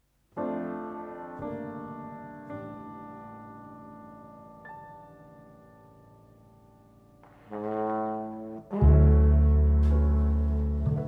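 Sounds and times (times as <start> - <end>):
piano chord: 8.7 - 11.0.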